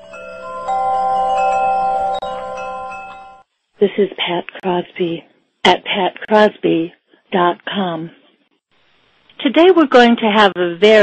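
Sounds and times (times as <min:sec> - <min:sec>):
bright chime tones: 0:00.0 - 0:03.5.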